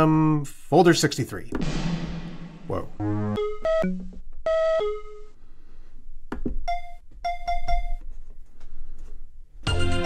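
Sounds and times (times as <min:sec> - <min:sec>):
short pitched synth notes: 0:02.1 - 0:04.2.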